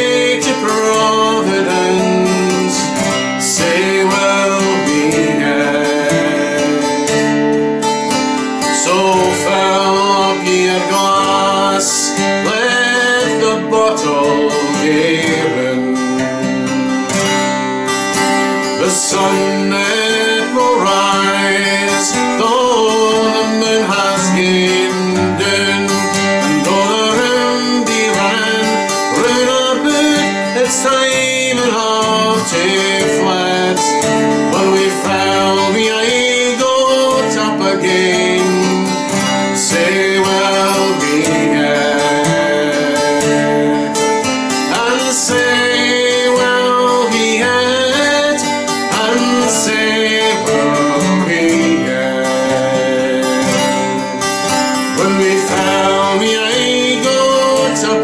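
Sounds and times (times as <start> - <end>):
acoustic guitar chords: 0.0 - 58.0
man singing folk song: 0.0 - 58.0.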